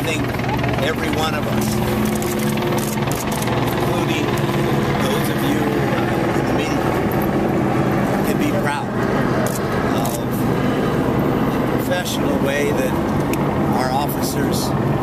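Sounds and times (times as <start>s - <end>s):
man speaking into microphones: 0.0s - 2.0s, 3.7s - 7.0s, 8.0s - 9.0s, 9.8s - 10.5s, 11.6s - 13.0s, 13.7s - 14.8s
low engine drone: 0.0s - 15.0s.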